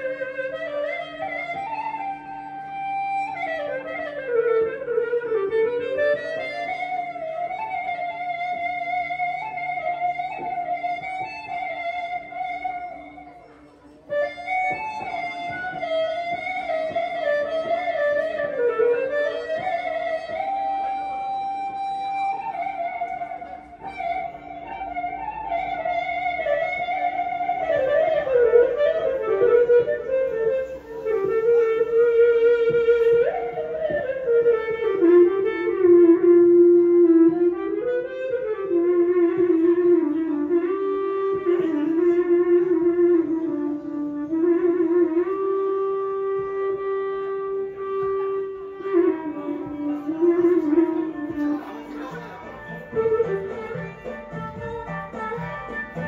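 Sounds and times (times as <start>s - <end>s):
electric violin melody with slides: 0.0s - 56.0s.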